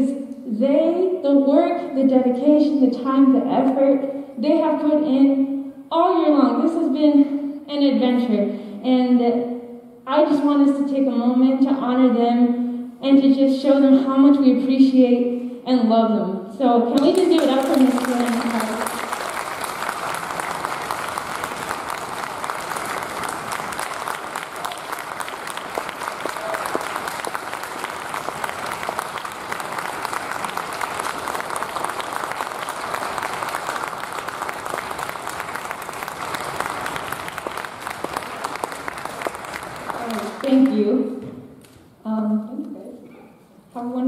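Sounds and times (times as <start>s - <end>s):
audience applauding: 17.0s - 40.7s.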